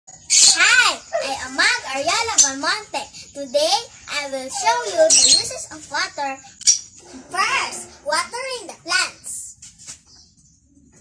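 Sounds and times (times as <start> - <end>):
young girl speaking: 0.5 - 6.6, 7.2 - 9.6.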